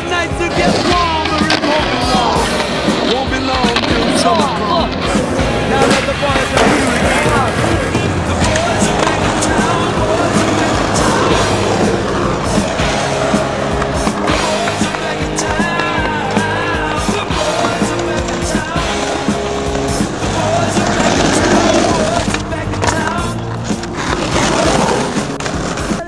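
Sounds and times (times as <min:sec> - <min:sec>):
melodic music track: 0:00.0 - 0:26.0
skateboard wheels rolling on concrete: 0:00.0 - 0:26.0
skateboard clacks and impacts: 0:00.5 - 0:26.0.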